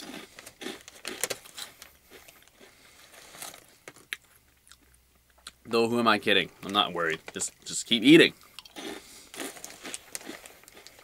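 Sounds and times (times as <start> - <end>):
chewing crunchy crackers: 0.0 - 5.6, 8.4 - 11.0.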